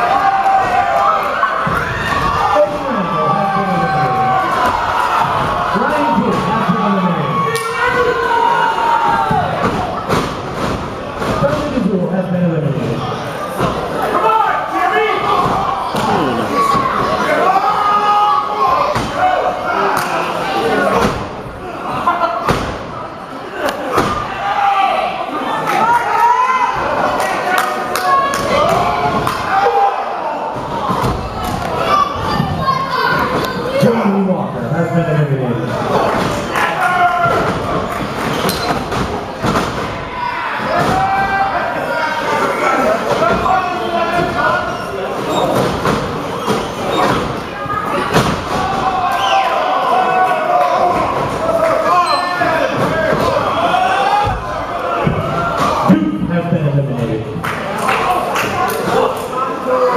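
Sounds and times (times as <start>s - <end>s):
crowd voices: 0.0s - 59.9s
thuds of wrestlers hitting ring: 40.6s - 41.5s, 45.2s - 49.2s.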